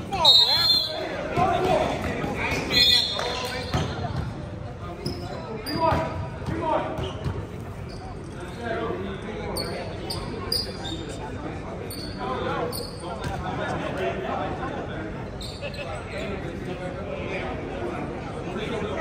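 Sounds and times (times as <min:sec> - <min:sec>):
sneaker squeaks: 0:00.1 - 0:01.7, 0:02.4 - 0:08.8, 0:09.5 - 0:11.3, 0:11.9 - 0:13.4, 0:15.3 - 0:16.6.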